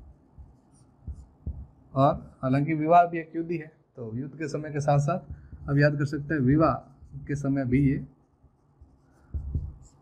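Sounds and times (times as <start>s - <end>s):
marker writing on whiteboard: 0.0s - 2.3s, 4.6s - 10.0s.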